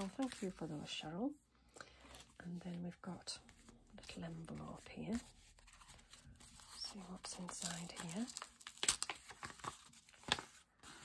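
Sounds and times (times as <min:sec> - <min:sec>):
paper rustling and crinkling: 0:00.0 - 0:00.8, 0:03.4 - 0:11.0
sharp paper crackles: 0:03.5 - 0:11.0.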